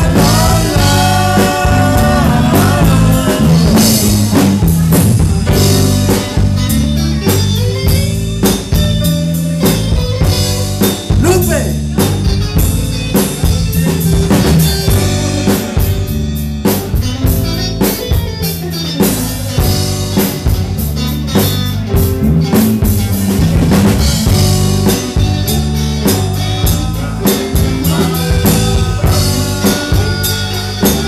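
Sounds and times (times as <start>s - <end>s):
drum kit beat: 0.0s - 31.0s
live band playing: 0.0s - 31.0s
sustained bass line: 0.0s - 31.0s.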